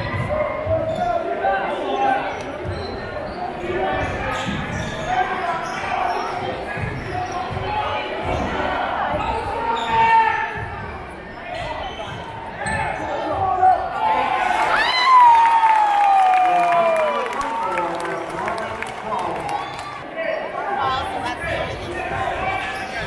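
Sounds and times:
crowd voices: 0:00.0 - 0:23.0.

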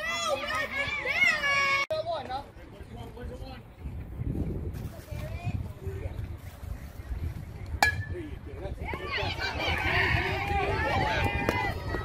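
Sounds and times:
metal bat hitting ball: 0:07.8 - 0:08.2.

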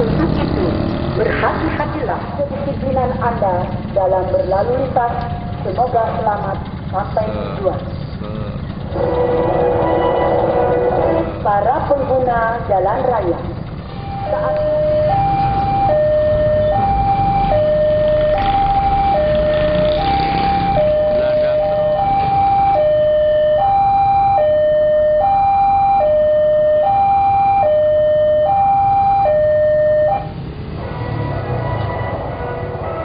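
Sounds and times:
motorbikes passing: 0:00.0 - 0:25.4, 0:28.8 - 0:33.0
level-crossing hi-lo alarm: 0:02.0 - 0:30.4.

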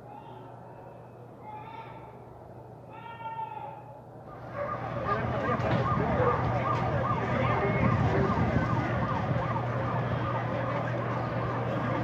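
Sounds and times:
low hum of street noise: 0:00.0 - 0:12.0
siren sweeping in pitch: 0:04.3 - 0:12.0.

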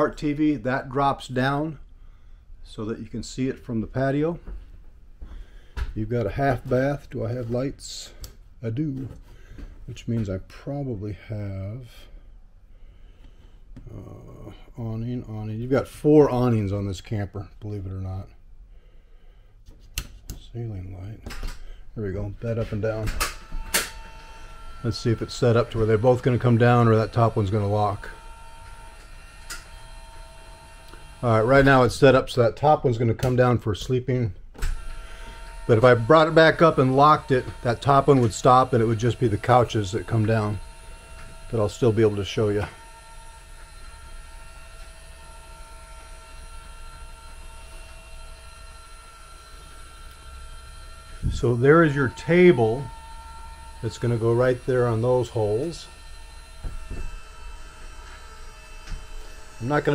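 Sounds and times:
electric lift motor hum: 0:21.6 - 0:33.3, 0:34.6 - 0:59.9.

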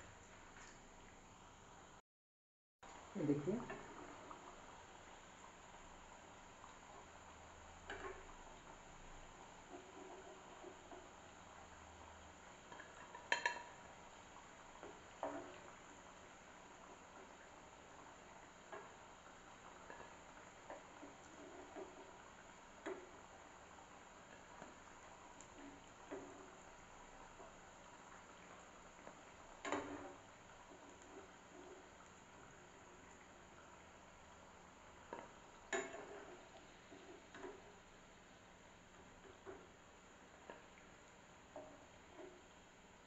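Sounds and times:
oil frying hiss: 0:02.8 - 0:43.0.

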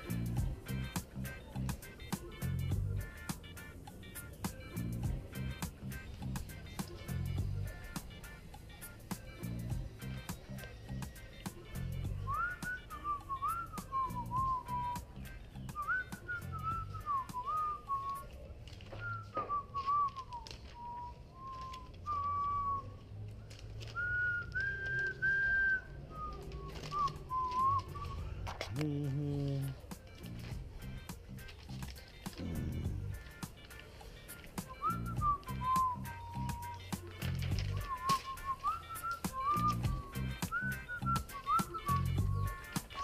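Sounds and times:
background music: 0:00.0 - 0:43.0
person whistling a tune: 0:10.9 - 0:18.3, 0:18.9 - 0:23.0, 0:24.0 - 0:29.8, 0:34.6 - 0:43.0.

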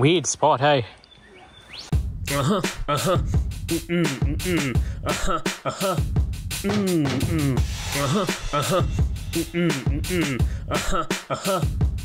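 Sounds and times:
rapping over a drum beat: 0:02.3 - 0:06.0, 0:06.6 - 0:11.7.

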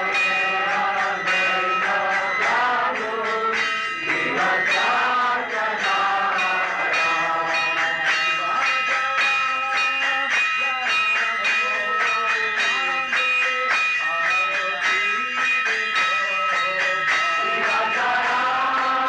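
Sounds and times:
group of voices chanting: 0:00.0 - 0:08.9, 0:17.0 - 0:19.0
hand cymbals striking: 0:00.0 - 0:19.0.

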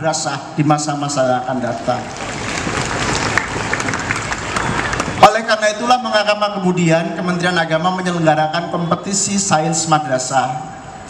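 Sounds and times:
audience applauding: 0:01.6 - 0:05.4.

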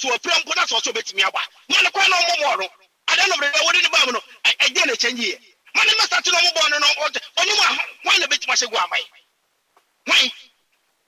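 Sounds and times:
man's voice burst: 0:00.0 - 0:09.2, 0:10.1 - 0:10.5.

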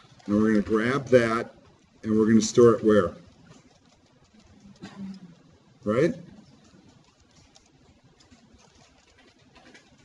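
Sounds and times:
faint keyboard clicks: 0:00.0 - 0:05.7, 0:06.3 - 0:10.0.

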